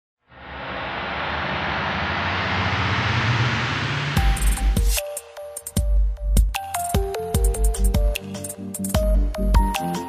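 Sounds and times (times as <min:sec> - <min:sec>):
whoosh riser: 0:00.2 - 0:05.7
low rumble: 0:00.3 - 0:05.0.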